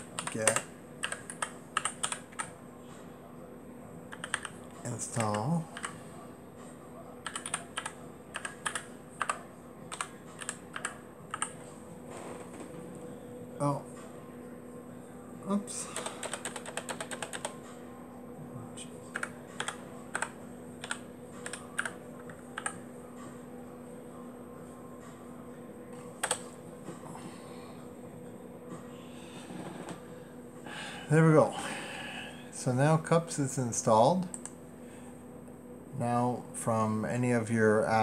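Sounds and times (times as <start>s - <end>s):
computer keyboard keys clicking: 0.2s - 2.5s, 4.1s - 4.6s, 5.2s - 6.0s, 7.2s - 11.6s, 16.0s - 17.5s, 19.1s - 22.8s.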